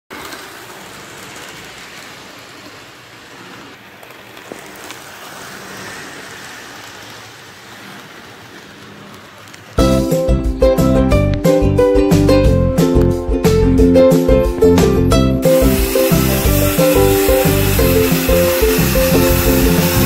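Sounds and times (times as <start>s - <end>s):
model train rolling on track: 0.1s - 11.4s, 15.2s - 20.0s
strummed guitar music: 9.8s - 20.0s.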